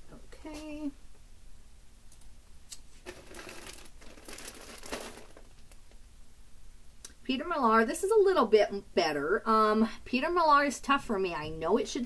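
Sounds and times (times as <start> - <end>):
packaging crinkling and rustling: 2.9 - 6.0.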